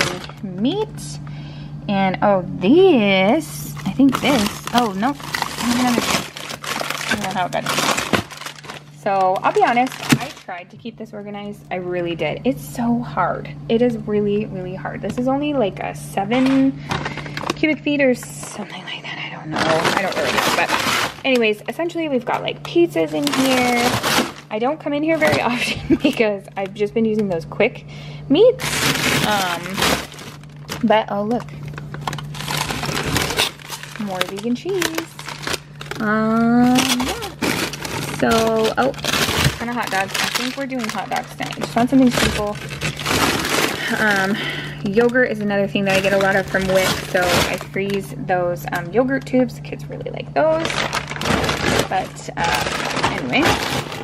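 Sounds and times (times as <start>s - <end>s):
plastic bags crinkling: 0.0s - 0.9s, 3.4s - 10.6s, 16.2s - 26.7s, 28.4s - 48.1s, 50.4s - 54.0s
plastic packaging rustling: 0.0s - 0.9s, 3.6s - 10.6s, 16.3s - 17.8s, 18.4s - 26.7s, 28.6s - 48.1s, 50.4s - 54.0s
freezer hum: 0.0s - 54.0s.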